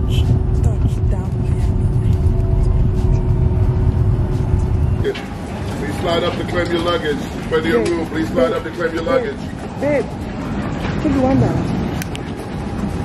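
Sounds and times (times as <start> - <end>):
jet engine cabin rumble: 0.0 - 13.0.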